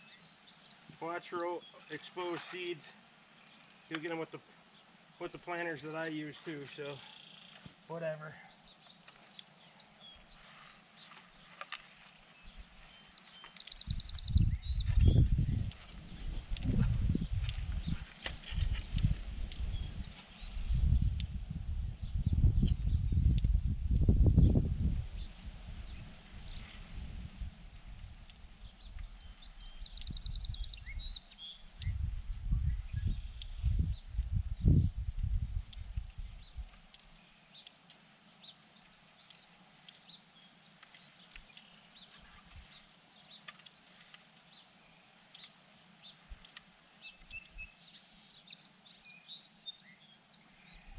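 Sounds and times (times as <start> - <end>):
wind buffeting microphone: 13.7 - 36.8.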